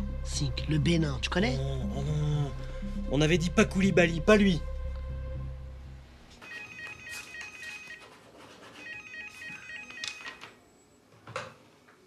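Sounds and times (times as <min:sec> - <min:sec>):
telephone warbling ring: 0:06.4 - 0:08.0, 0:08.8 - 0:10.4.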